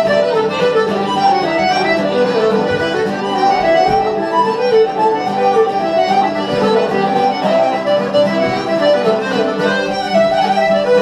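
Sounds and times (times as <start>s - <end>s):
accordion and fiddle dance tune: 0.0s - 11.0s.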